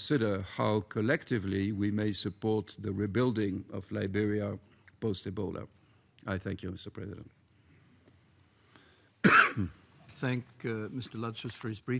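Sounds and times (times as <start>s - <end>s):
person coughing: 9.2s - 9.8s.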